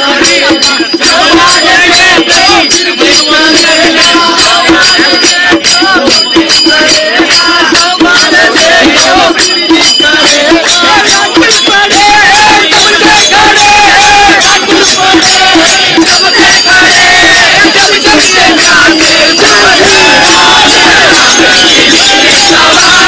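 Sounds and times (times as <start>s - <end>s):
chanted sung melody: 0.0s - 23.0s
crowd voices: 0.0s - 23.0s
sharp percussive strikes: 0.0s - 23.0s.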